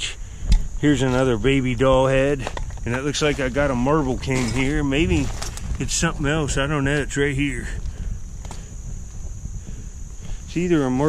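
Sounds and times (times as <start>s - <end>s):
hand rummaging in dirt and debris: 2.4s - 5.8s.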